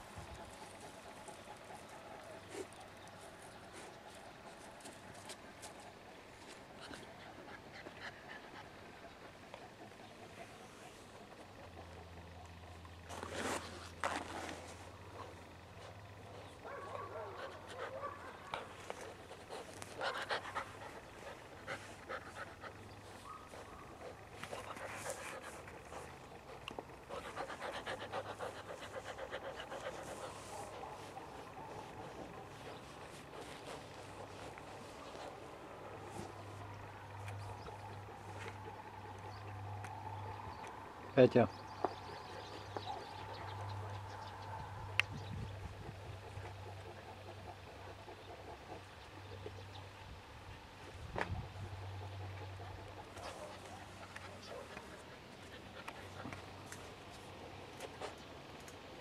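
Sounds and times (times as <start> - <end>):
puppy sniffing: 13.1 - 38.7, 53.0 - 58.2.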